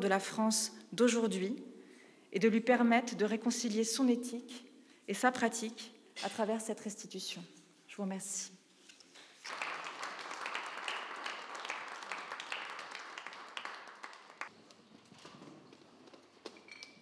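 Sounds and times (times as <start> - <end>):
audience applauding: 9.4 - 14.5.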